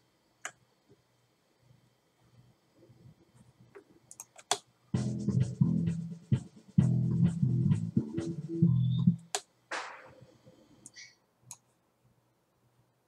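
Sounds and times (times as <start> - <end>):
bass guitar riff: 5.0 - 9.2.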